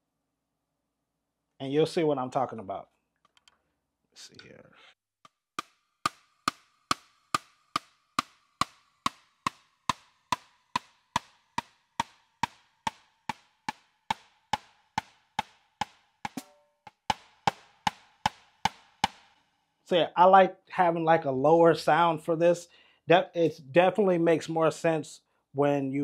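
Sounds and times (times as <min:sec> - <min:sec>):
stick striking electronic snare pad: 0:05.6 - 0:19.4
snare drum sample ringing: 0:16.3 - 0:19.3.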